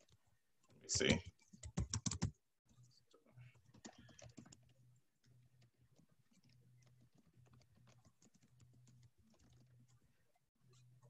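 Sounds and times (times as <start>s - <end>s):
typing on a keyboard: 1.2s - 2.4s, 3.6s - 4.8s, 5.9s - 10.0s.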